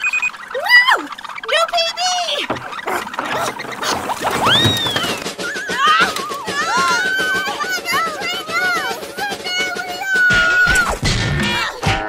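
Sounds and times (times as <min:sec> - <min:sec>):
high-pitched warbling cartoon wails: 0:00.0 - 0:11.8.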